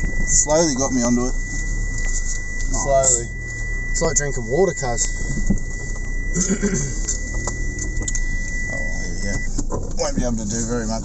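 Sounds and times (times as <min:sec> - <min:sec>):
steady high-pitched tone: 0:00.0 - 0:09.5
car engine and road rumble: 0:00.0 - 0:11.0
person laughing: 0:06.4 - 0:07.0.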